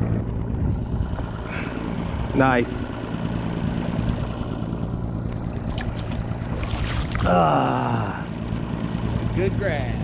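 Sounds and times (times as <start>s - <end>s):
outboard motor running: 0.0s - 10.0s
wind: 0.0s - 10.0s
water noise: 4.0s - 9.5s
water splashes: 5.2s - 7.7s.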